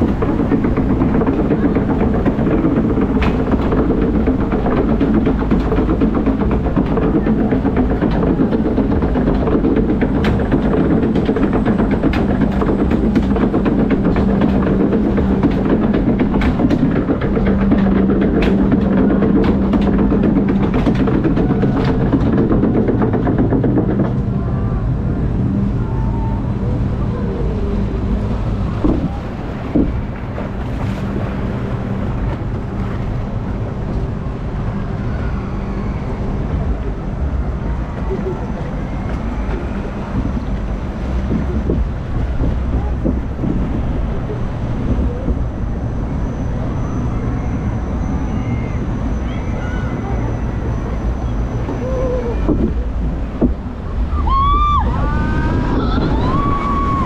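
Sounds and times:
conveyor clicking: 0.0 - 27.1
conveyor mechanical drone: 0.0 - 57.0.

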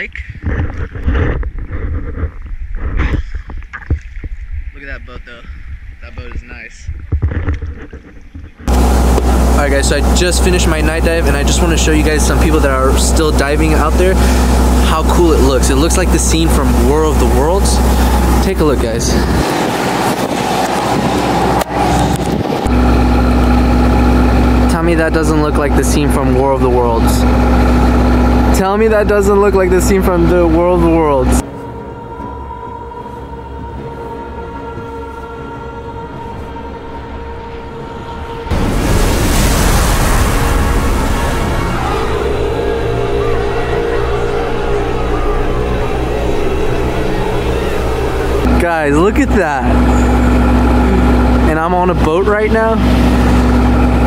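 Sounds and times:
low rumble: 0.0 - 54.0
boat engine humming: 8.0 - 54.0
sustained low tones: 8.4 - 54.0.

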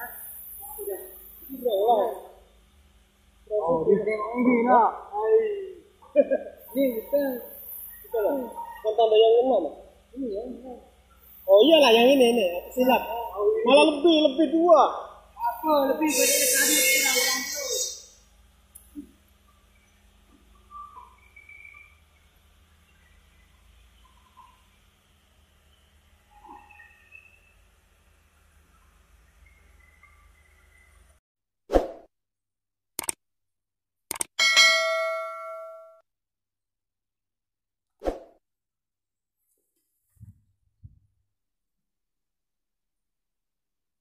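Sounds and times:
faint background hum: 0.0 - 31.2
sharp clicks: 33.0 - 33.2, 34.1 - 34.4
bell-like ding: 34.4 - 36.0.

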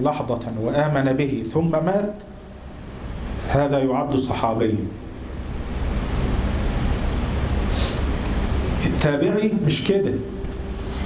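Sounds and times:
steady rushing noise: 1.6 - 11.0.

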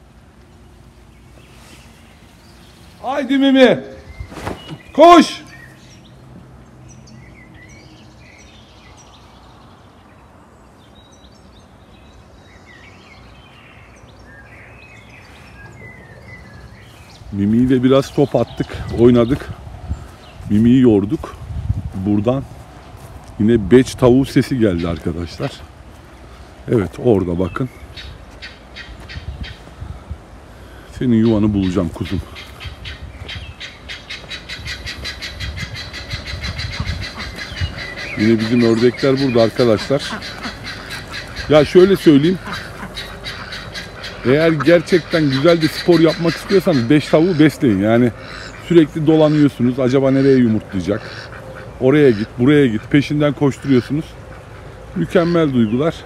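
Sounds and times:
low outdoor background noise: 0.0 - 56.0
small birds chirping: 0.0 - 56.0
guineafowl calling: 24.6 - 26.0, 27.4 - 29.8, 30.6 - 56.0.

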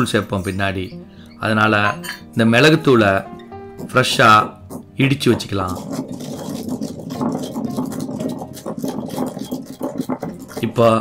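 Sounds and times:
pestle grinding peppercorns in mortar: 2.7 - 11.0.

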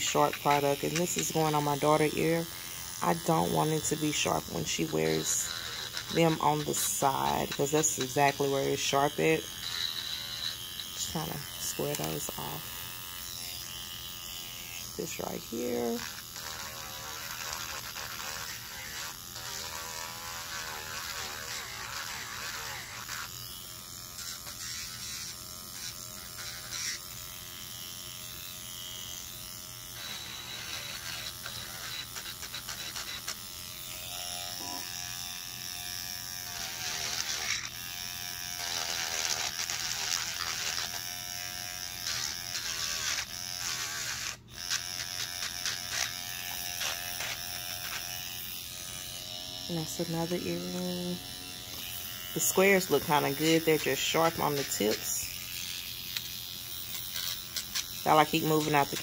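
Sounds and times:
electric nail drill grinding: 0.0 - 59.0.

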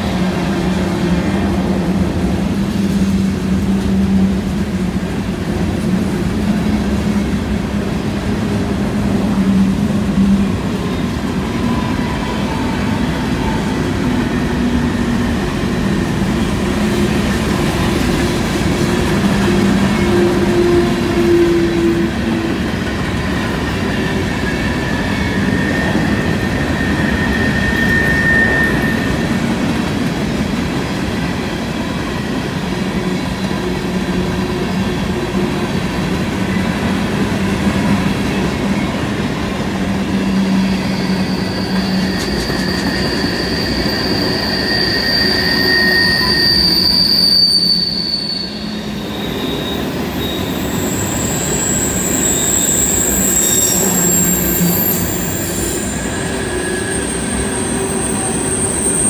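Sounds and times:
freight cars rolling on rails: 0.0 - 59.0
wheel squeal: 23.3 - 29.6, 40.1 - 59.0.

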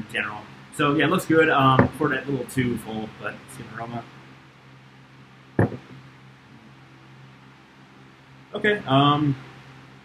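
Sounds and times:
low room hum: 0.0 - 10.0
cup knocking on table: 1.8 - 2.0, 5.6 - 6.0.

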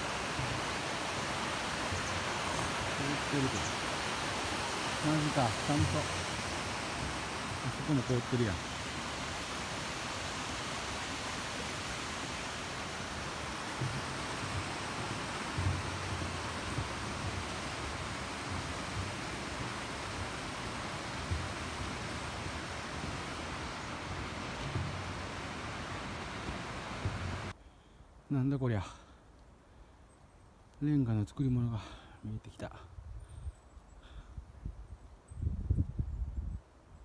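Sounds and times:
footsteps on snowy bridge: 0.0 - 27.5
mountain stream rushing: 0.0 - 27.6.

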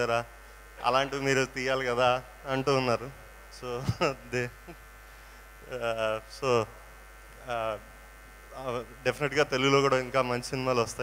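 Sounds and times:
man speaking into a microphone: 0.0 - 4.7, 5.6 - 6.8, 7.4 - 7.9, 8.5 - 11.0
electrical hum: 0.0 - 11.0.

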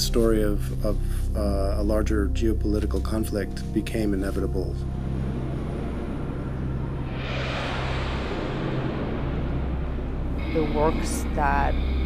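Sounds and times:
low droning hum: 0.0 - 12.0
rushing noise: 4.8 - 12.0.

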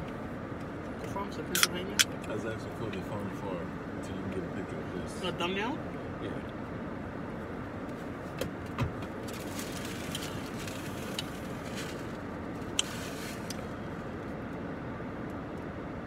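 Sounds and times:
car cabin engine hum: 0.0 - 16.0.

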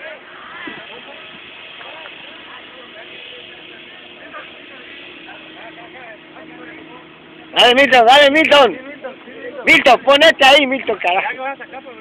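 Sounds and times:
distant chatter of voices: 0.0 - 12.0.

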